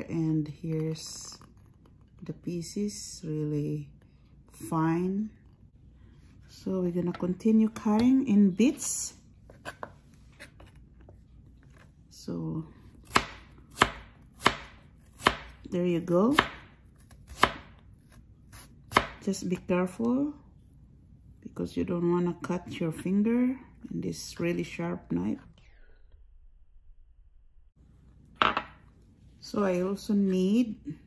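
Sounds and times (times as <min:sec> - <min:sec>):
knife chopping on plastic board: 0:13.0 - 0:15.6, 0:16.3 - 0:19.2.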